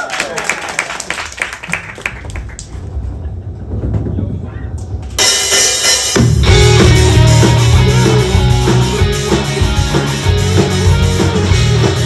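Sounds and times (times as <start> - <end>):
audience clapping: 0.0 - 2.9
low rumble: 1.7 - 5.2.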